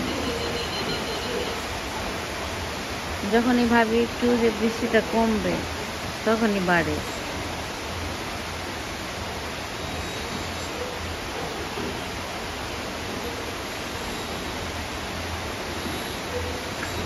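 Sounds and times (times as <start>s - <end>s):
steady rain falling: 0.0s - 17.0s.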